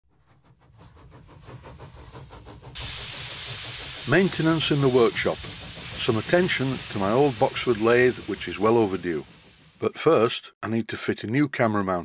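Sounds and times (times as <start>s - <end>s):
rapid mechanical rhythm: 0.4s - 9.9s
loud hiss of escaping steam: 1.9s - 10.0s.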